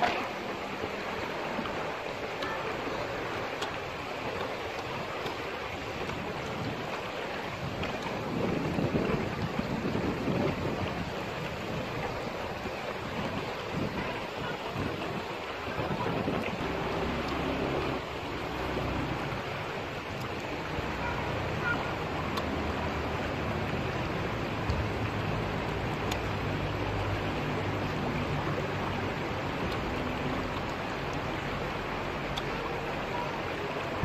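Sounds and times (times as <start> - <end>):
water rushing over rocks: 0.0 - 34.0
wind buffeting microphone: 0.0 - 34.0.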